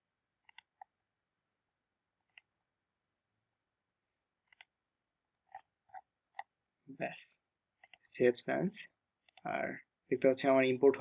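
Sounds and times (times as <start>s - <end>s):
computer mouse clicking: 0.4s - 0.9s, 2.2s - 2.5s, 4.4s - 4.8s, 7.8s - 8.1s, 9.2s - 9.5s.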